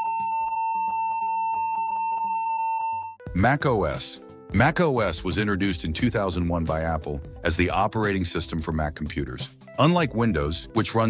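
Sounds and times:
buzzy computer beep: 0:00.0 - 0:03.2.

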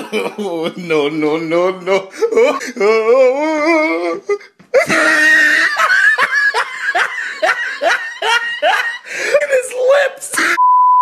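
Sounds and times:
person laughing: 0:00.0 - 0:10.6.

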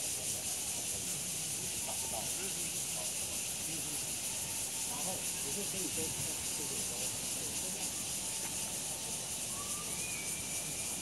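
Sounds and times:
high-pitched outdoor hiss: 0:00.0 - 0:11.0
faint thin whistling tones: 0:07.7 - 0:11.0.

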